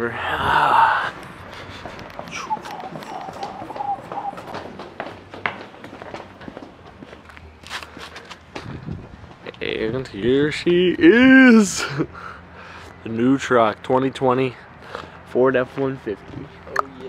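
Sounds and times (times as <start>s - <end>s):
footsteps on concrete stairs: 1.2s - 9.6s.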